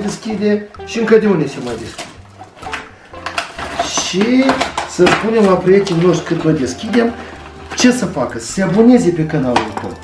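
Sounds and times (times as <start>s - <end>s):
packaging clicks and rustles: 0.0s - 10.0s.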